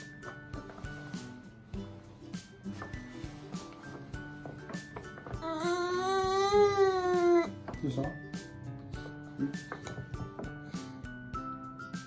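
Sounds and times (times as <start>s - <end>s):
soft background music: 0.0s - 12.0s
toddler whining: 5.2s - 7.6s.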